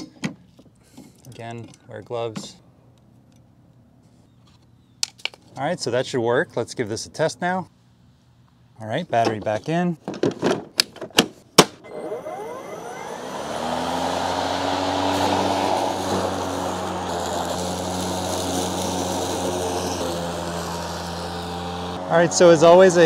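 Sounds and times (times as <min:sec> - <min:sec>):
lawn mower motor whine: 0:11.8 - 0:23.0
mower cutting grass: 0:11.9 - 0:23.0.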